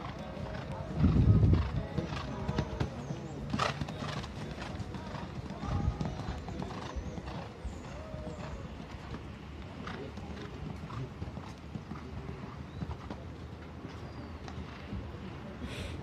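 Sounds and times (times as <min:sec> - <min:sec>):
horse hoofbeats on sand: 0:00.0 - 0:13.2
faint voices: 0:00.0 - 0:16.0.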